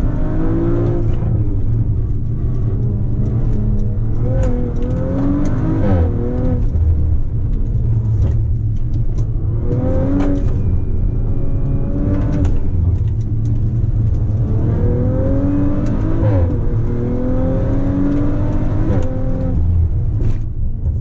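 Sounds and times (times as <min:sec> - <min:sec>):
car engine revving in cabin: 0:00.0 - 0:21.0
low road rumble: 0:00.0 - 0:21.0.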